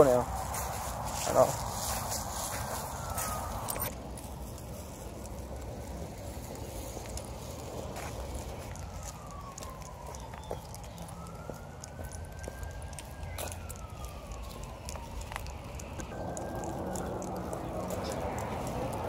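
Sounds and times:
steady low rumble: 0.0 - 10.1, 10.7 - 19.0
faint siren wailing: 0.0 - 19.0.

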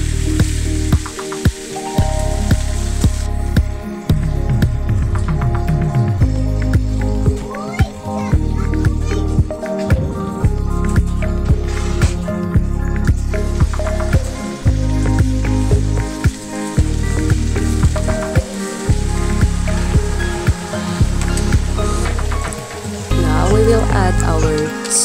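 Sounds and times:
vegetables sizzling in oil: 0.0 - 4.5, 6.2 - 25.0
background music with beat: 0.0 - 25.0.

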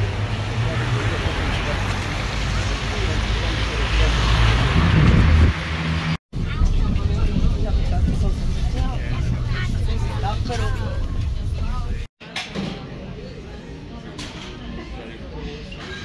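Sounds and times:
bus engine hum: 0.0 - 12.1
passing cars rumbling: 0.0 - 12.1
passengers chattering: 6.4 - 16.0.

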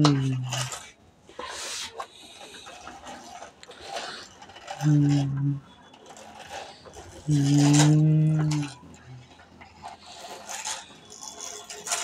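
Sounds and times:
plastic toy clicks and rattles: 0.0 - 1.0, 1.6 - 12.0.

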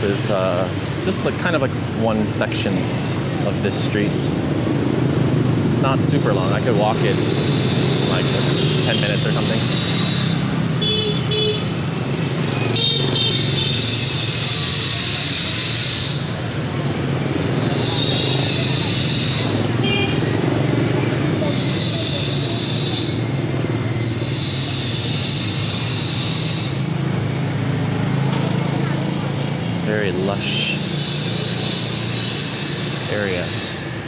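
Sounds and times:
motorbike traffic drone: 0.0 - 34.0
loud high-pitched buzz: 4.1 - 28.4, 29.9 - 34.0.

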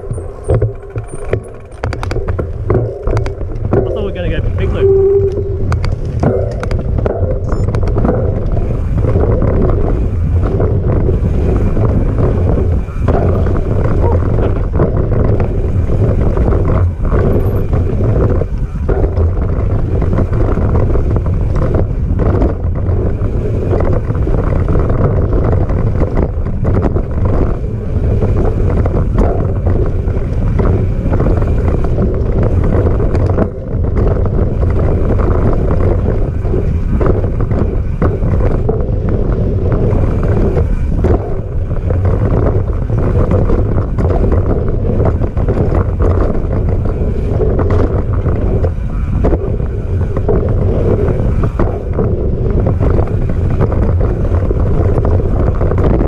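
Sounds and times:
bike knocks and rattles: 0.0 - 56.0
tyre noise on dirt trail: 0.0 - 56.0
wind rushing over microphone: 0.0 - 56.0.

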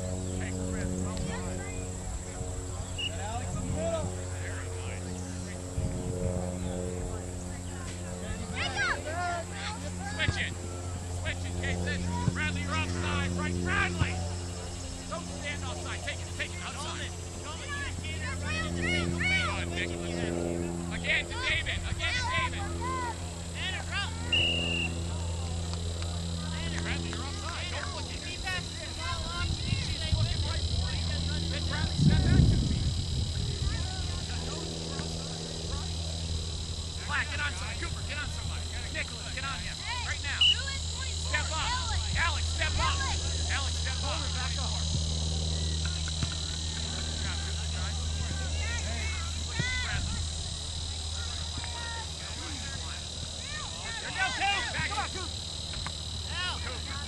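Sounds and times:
distant shouting voices: 0.0 - 57.0
high-pitched insect drone: 0.0 - 57.0
steady low hum: 0.0 - 57.0
high whistle tone: 2.9 - 3.3, 24.2 - 25.1, 40.4 - 40.8.

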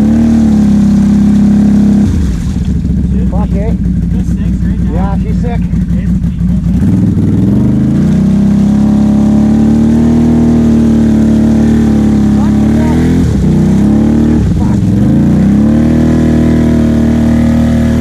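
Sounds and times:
atv engine revving: 0.0 - 18.0.

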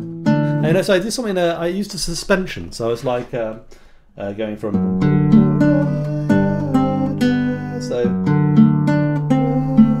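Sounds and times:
classical guitar fingerpicked: 0.0 - 0.9, 4.6 - 10.0.

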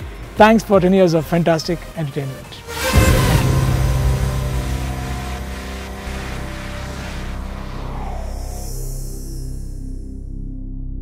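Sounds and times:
low steady drone: 2.5 - 11.0.

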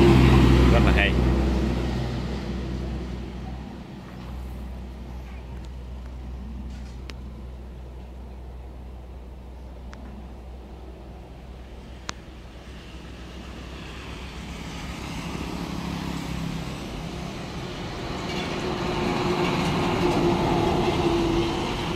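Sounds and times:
truck approaching: 0.0 - 21.9.

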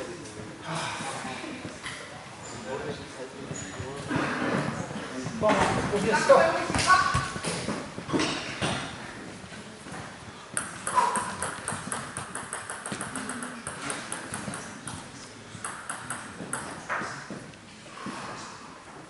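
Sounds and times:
table tennis balls bouncing: 9.9 - 17.6.

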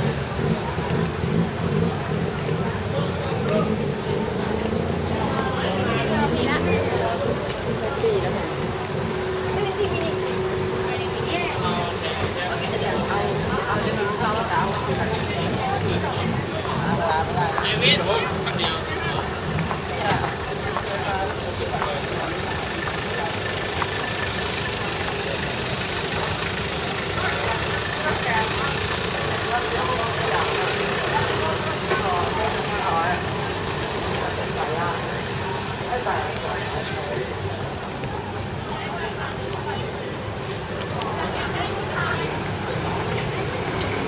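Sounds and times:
people talking: 0.0 - 44.0
traffic rumble: 0.0 - 44.0.

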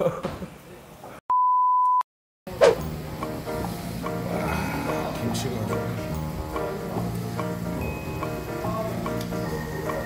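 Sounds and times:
man laughing: 0.0 - 0.3
steady test tone beep: 1.3 - 2.1.

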